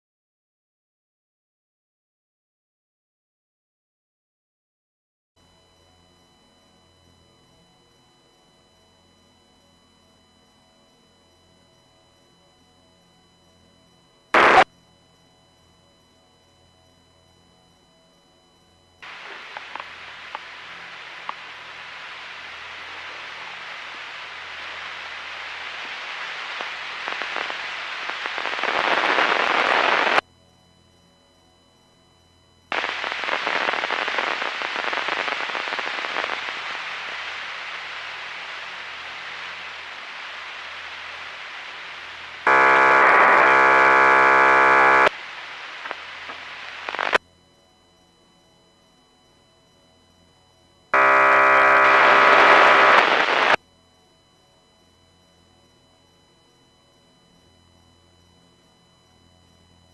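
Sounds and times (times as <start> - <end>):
loud buzzing tone: 14.3 - 14.7, 38.0 - 47.2, 51.0 - 53.6
radio static hiss: 14.3 - 14.7, 19.0 - 30.2, 32.7 - 47.2, 51.0 - 53.6.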